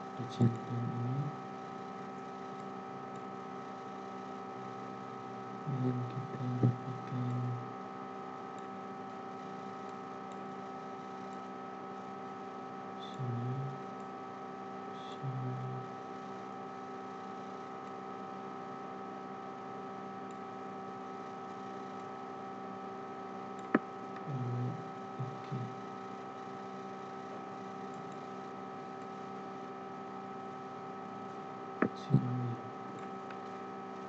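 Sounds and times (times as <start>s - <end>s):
electrical hum: 0.0s - 34.0s.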